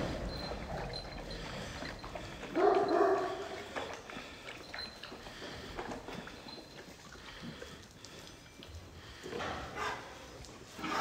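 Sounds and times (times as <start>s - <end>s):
dog calling: 2.5s - 3.6s.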